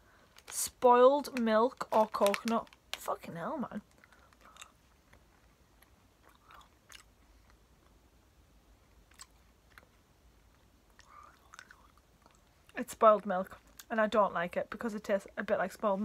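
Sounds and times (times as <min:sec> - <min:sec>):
person chewing with wet clicks: 0:03.8 - 0:05.2, 0:05.8 - 0:08.0, 0:08.9 - 0:12.8.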